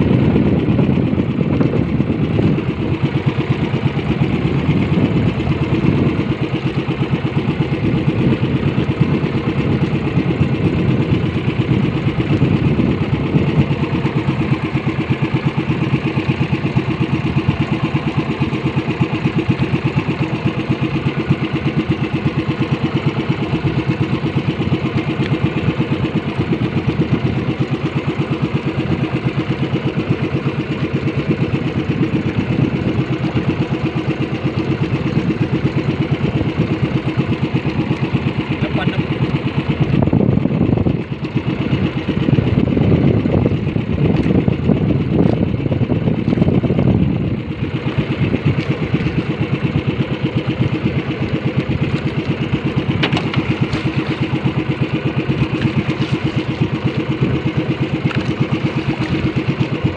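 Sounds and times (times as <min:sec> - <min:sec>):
boat engine idling: 0:00.0 - 0:59.9.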